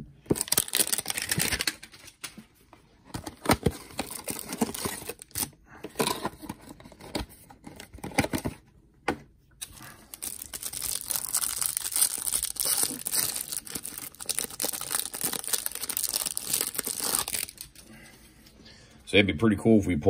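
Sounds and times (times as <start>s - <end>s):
cellophane crinkling: 0.3s - 2.3s, 3.1s - 5.5s, 9.7s - 17.8s.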